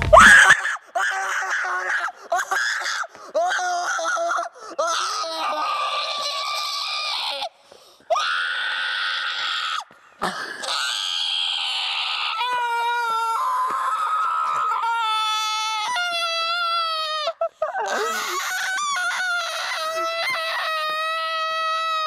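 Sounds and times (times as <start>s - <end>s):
person screaming: 0.0s - 2.1s, 10.6s - 22.0s.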